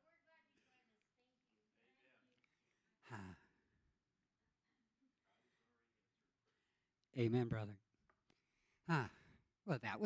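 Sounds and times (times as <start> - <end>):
man sighing into microphone: 3.0 - 3.6.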